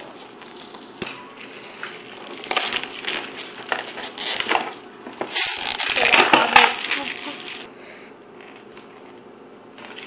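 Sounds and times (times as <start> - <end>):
plastic shrink-wrap tearing and crinkling: 1.4 - 7.7.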